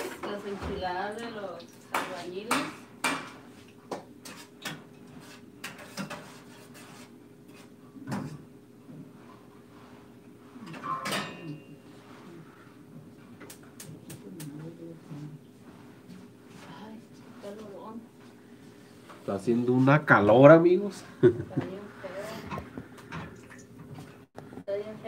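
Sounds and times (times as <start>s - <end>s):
steady low hum: 7.1s - 25.0s
utensils and dishes clinking: 10.6s - 11.9s.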